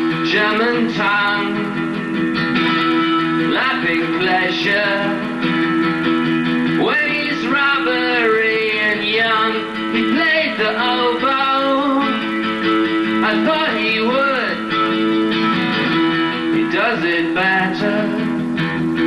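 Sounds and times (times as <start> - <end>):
acoustic guitar chords: 0.0 - 19.0.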